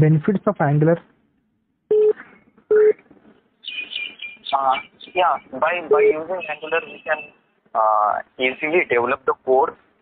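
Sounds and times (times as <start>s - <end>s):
telephone beeps: 1.9s - 3.0s.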